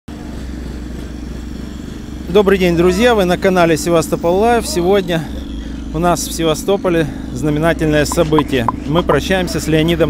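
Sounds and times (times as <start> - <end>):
generator engine running: 0.1 - 10.0.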